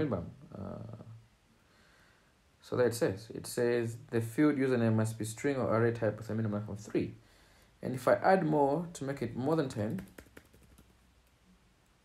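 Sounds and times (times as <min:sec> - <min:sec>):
computer keyboard keystrokes: 0:09.8 - 0:11.0.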